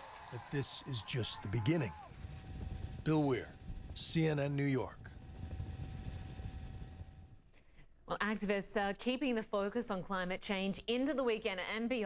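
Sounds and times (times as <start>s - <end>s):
helicopter rotor rumble: 1.5s - 7.4s.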